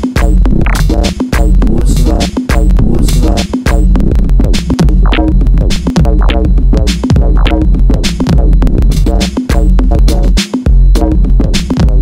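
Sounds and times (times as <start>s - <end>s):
glitchy electronic music: 0.0s - 12.0s.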